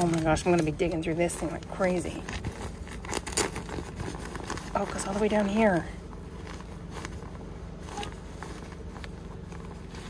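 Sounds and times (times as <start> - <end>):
fabric backpack rustling: 0.0 - 10.0
steady low hum: 0.0 - 10.0.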